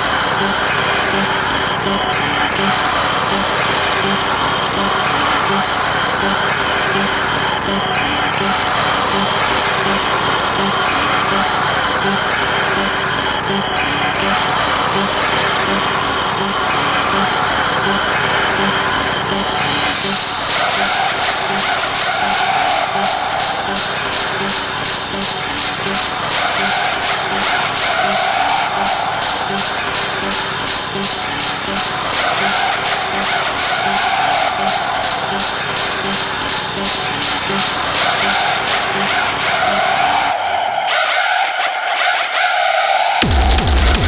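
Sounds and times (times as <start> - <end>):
harsh high tone: 0.0 - 44.0
industrial techno music: 0.0 - 44.0
fast high percussion: 19.3 - 40.3, 42.1 - 44.0
kick drum and hi-hats: 19.4 - 40.3, 43.2 - 44.0.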